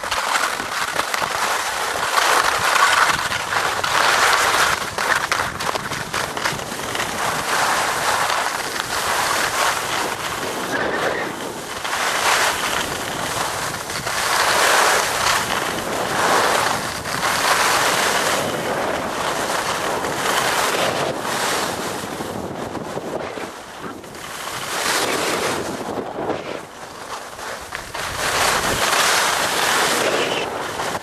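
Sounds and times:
skis scraping over snow: 0.0 - 31.0
wind buffeting microphone: 12.5 - 31.0.

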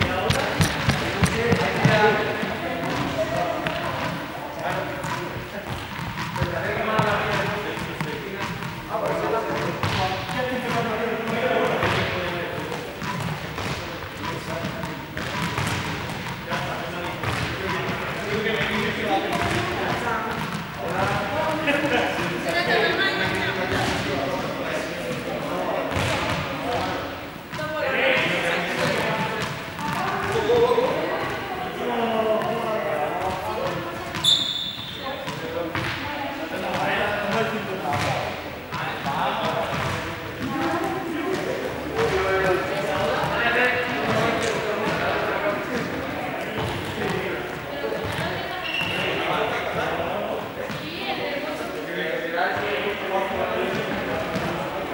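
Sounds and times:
indistinct chatter in echoing hall: 0.0 - 54.9.

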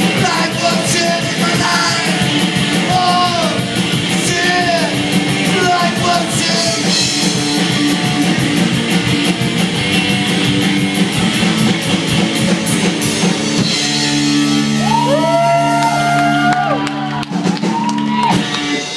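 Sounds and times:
rockabilly band playing: 0.0 - 18.9.

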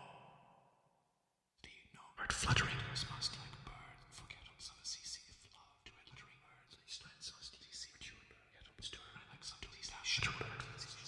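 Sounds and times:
processed male voice whispering: 1.6 - 11.0.

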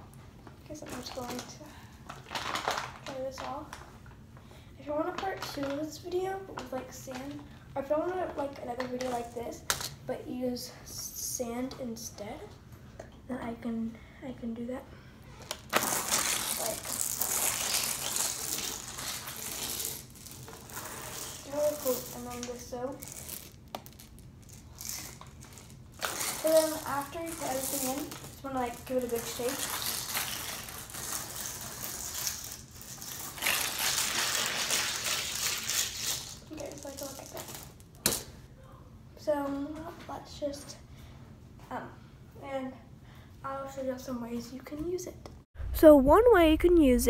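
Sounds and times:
beads rattling in plastic bottle: 2.2 - 3.6.

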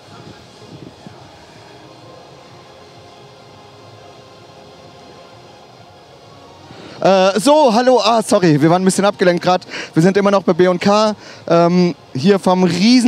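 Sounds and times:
exhibition hall ambience: 0.0 - 13.0
faint background music: 0.0 - 13.0.

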